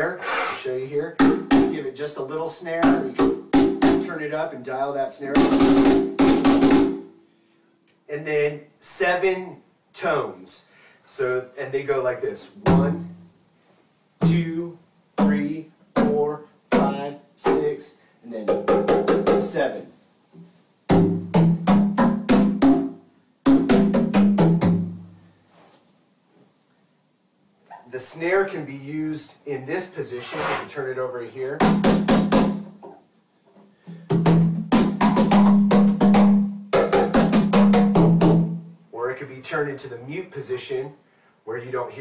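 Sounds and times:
cajon struck by hand: 1.2 - 1.7, 2.8 - 4.1, 5.4 - 7.0, 18.5 - 19.6, 20.9 - 22.9, 23.5 - 24.9, 34.0 - 38.6
hand strikes on cajon: 18.5 - 19.6.

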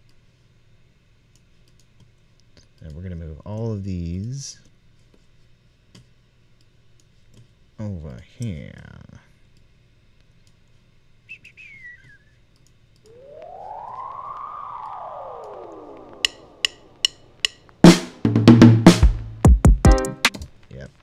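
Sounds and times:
falling whistle-like chirp: 11.3 - 12.4, 13.1 - 17.4
downward-gliding synth effect: 13.1 - 17.4
pitched synth sweep: 13.1 - 18.0
loud drum beat: 17.8 - 20.4.

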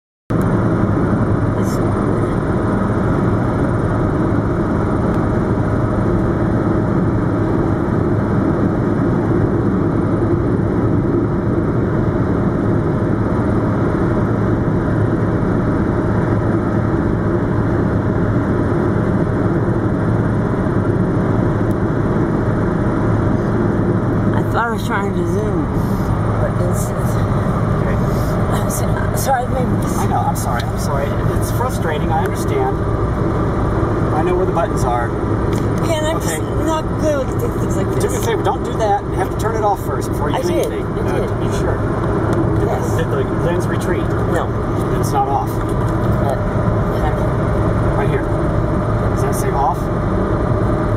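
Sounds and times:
air rushing past car: 25.4 - 39.2.

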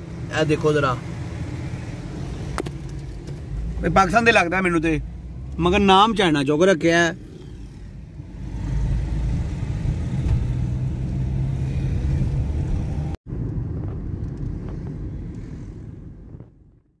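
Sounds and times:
car driving from inside cabin: 0.0 - 6.4, 7.2 - 16.9.

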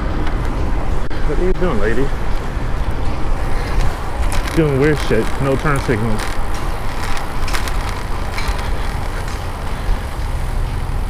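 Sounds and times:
cars passing: 0.0 - 11.0
wind rumble on camera: 0.0 - 11.0.

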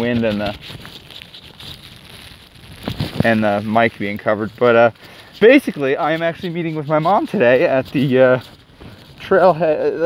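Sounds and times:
faint crackling rustle: 0.0 - 10.0.

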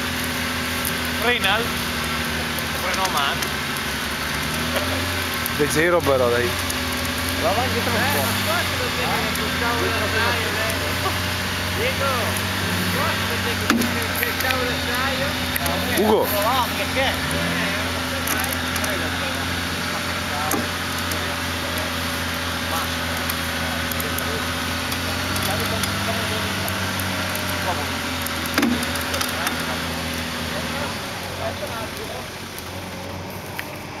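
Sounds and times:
off-road vehicle engine running: 0.0 - 34.0
voices calling out: 0.3 - 34.0.

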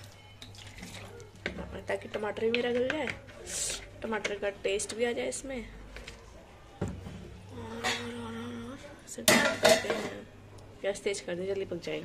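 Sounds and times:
metal lid clanking on pan: 9.3 - 10.2.

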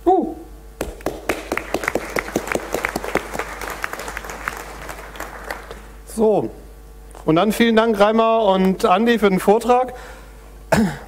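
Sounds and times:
audience applauding: 0.8 - 6.0.

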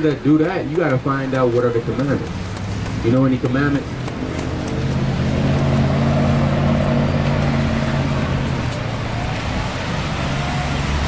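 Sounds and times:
traffic noise: 0.0 - 11.0
vehicle engine humming: 0.0 - 11.0.

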